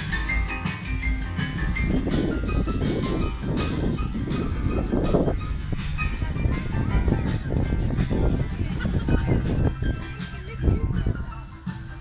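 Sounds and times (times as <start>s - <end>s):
heavy low rumble: 0.0s - 12.0s.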